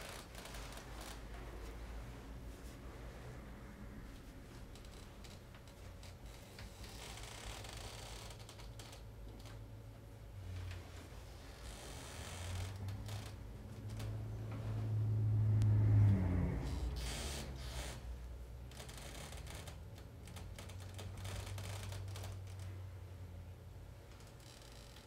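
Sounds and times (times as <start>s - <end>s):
low bass hum: 0.0s - 6.4s, 9.7s - 23.8s.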